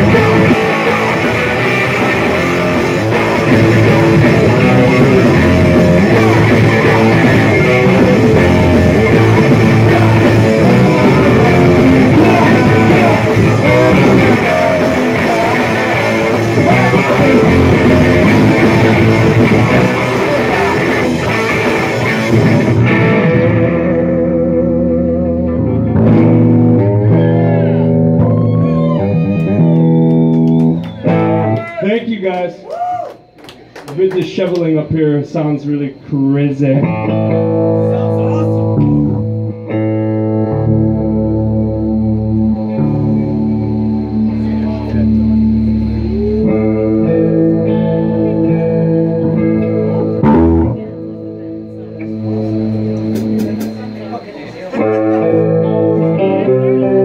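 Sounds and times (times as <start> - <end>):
live rock band playing loud: 0.0 - 31.6, 36.9 - 57.0
sustained ringing notes: 40.6 - 56.7.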